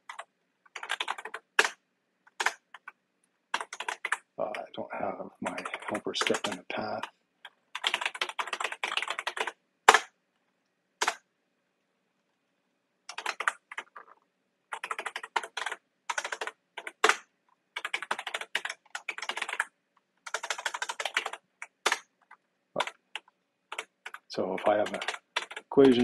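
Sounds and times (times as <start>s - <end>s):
typing on computer keyboard: 0.0s - 4.3s, 5.4s - 10.1s, 11.0s - 11.2s, 13.1s - 17.2s, 17.8s - 26.0s.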